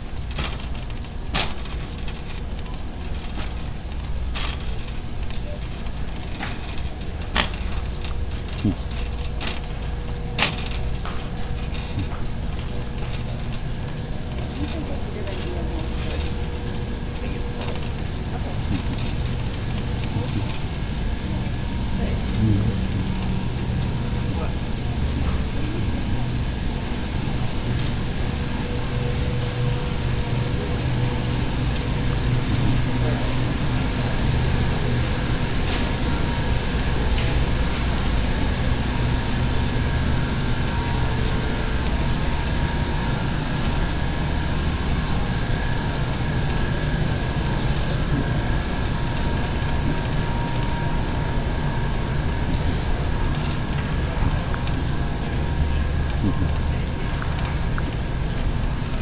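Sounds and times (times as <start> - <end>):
shopping cart wheels rumbling: 0.0 - 59.0
store background voices: 0.0 - 59.0.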